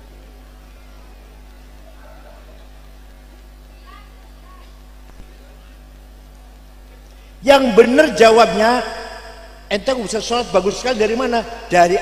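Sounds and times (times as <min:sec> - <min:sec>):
sound system electrical hum: 0:00.0 - 0:12.0
person speaking: 0:07.4 - 0:09.1, 0:09.7 - 0:12.0.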